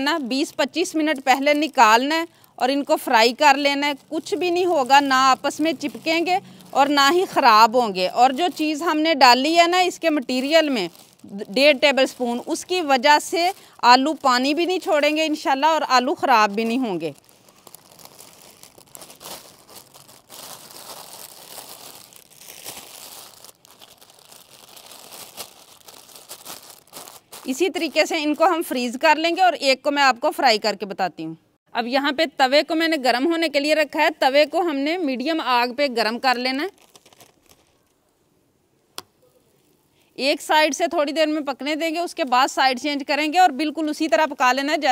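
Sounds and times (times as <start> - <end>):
plastic bag crinkling: 0.0 - 28.6, 36.1 - 38.1.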